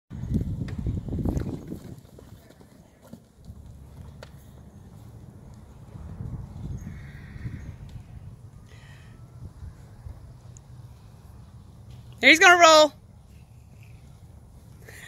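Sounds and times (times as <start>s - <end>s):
horse hoofbeats on turf: 0.3s - 6.6s.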